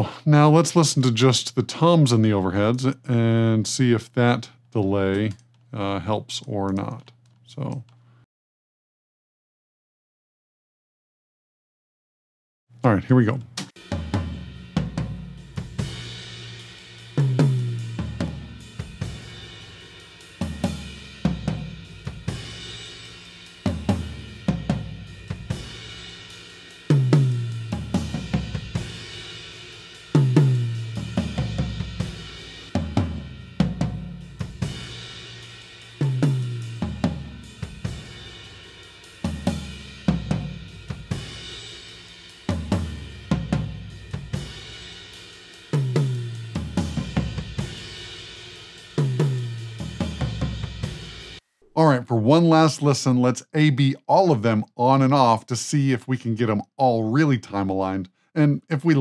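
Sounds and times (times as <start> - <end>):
tom drum fills: 13.5 - 52.7.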